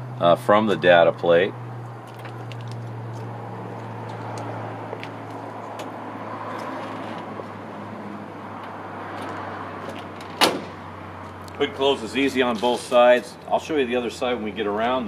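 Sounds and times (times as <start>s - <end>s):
car hood panel clunking shut: 10.2s - 10.8s.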